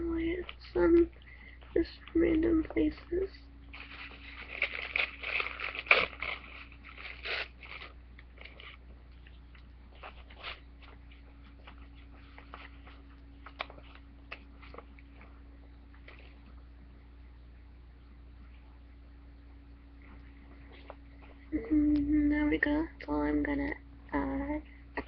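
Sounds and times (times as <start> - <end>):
tissue paper crinkling: 3.7 - 8.9, 9.9 - 15.3.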